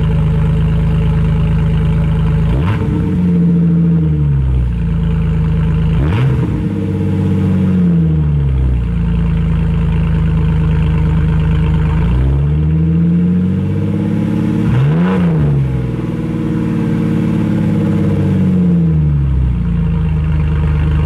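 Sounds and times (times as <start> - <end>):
engine revving through straight exhaust: 0.0 - 21.0.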